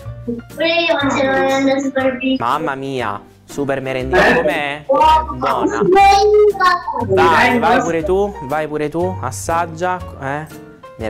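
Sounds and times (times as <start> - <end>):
background music: 0.0 - 11.0
child's sing-song call: 0.6 - 2.4, 4.9 - 8.1.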